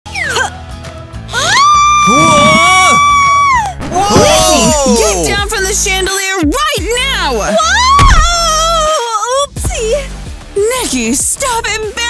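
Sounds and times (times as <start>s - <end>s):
background music: 0.1s - 12.0s.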